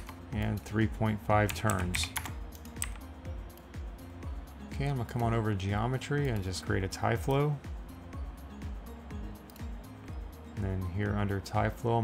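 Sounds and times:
quiet background music: 0:00.0 - 0:12.0
keyboard keystrokes: 0:01.5 - 0:03.0.

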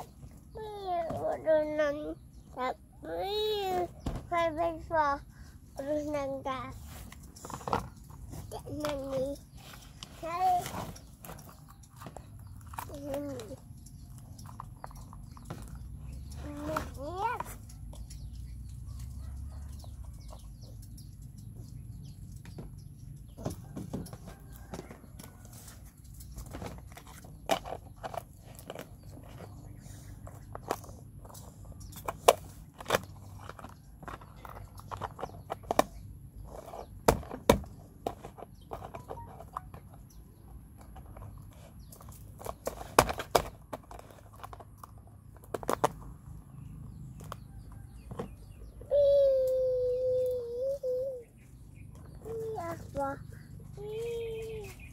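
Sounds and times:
plastic toys clicking on mat: 0:05.8 - 0:46.4.

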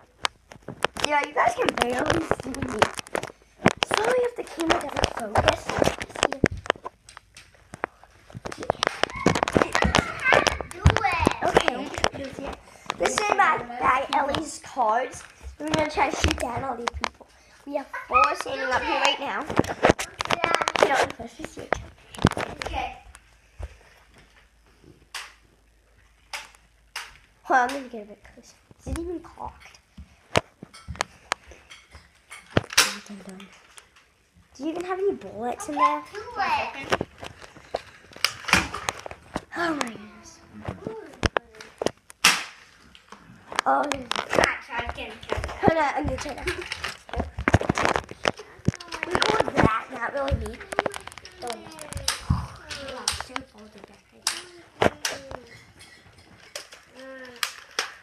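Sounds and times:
child's voice: 0:01.0 - 0:03.0, 0:03.8 - 0:06.6, 0:08.5 - 0:23.1, 0:27.5 - 0:29.8, 0:34.6 - 0:37.0, 0:39.5 - 0:41.8, 0:43.6 - 0:47.3, 0:48.4 - 0:55.8, 0:56.9 - 0:57.5
plastic clicks of toy blaster: 0:54.2 - 0:55.4, 0:56.5 - 0:58.0.

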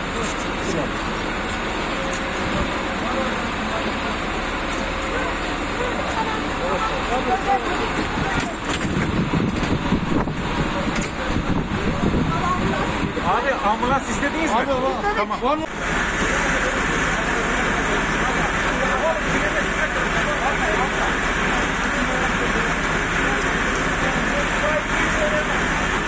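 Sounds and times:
indistinct voices: 0:00.0 - 0:26.0
street and vehicle noise: 0:00.0 - 0:26.0.

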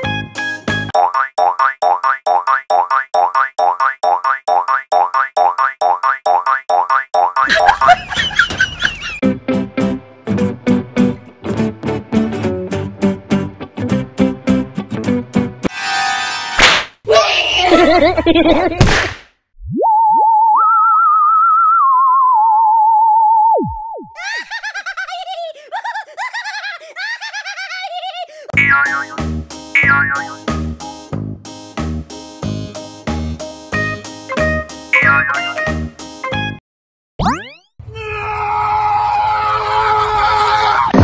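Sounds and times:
sharp smack: 0:16.6 - 0:17.0, 0:18.8 - 0:19.3
cartoon boing sound effect: 0:28.6 - 0:29.2, 0:29.8 - 0:30.4, 0:35.0 - 0:35.6, 0:37.2 - 0:37.7.

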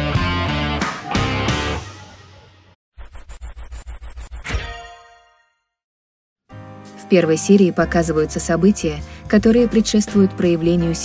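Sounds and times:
background music: 0:06.5 - 0:11.0.

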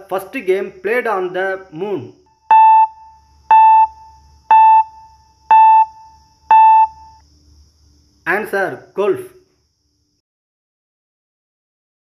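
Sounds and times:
short electronic beeps: 0:02.4 - 0:07.2.

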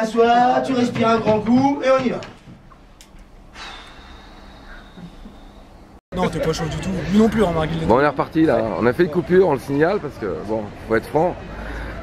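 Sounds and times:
man breathing in deeply: 0:03.5 - 0:05.8, 0:11.5 - 0:12.0.

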